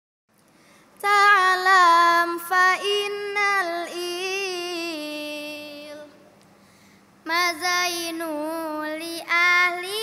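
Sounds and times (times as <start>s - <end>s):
girl chanting verse: 1.0s - 6.2s, 7.2s - 10.0s.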